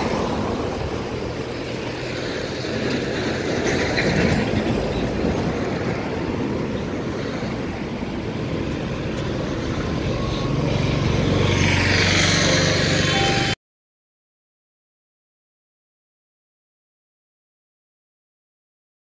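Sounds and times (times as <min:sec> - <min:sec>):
train wheels rumbling on rails: 0:00.0 - 0:13.5.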